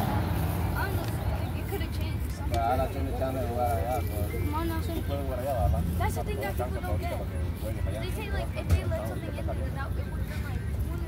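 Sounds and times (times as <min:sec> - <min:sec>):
children talking and calling: 0:00.0 - 0:11.0.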